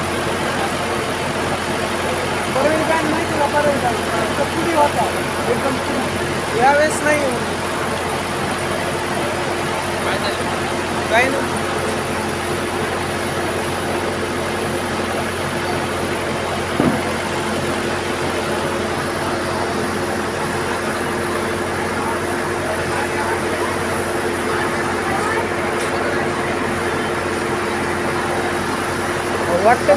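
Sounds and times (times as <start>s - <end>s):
crowd hubbub: 0.0s - 29.9s
tractor diesel engine idling: 0.0s - 29.9s.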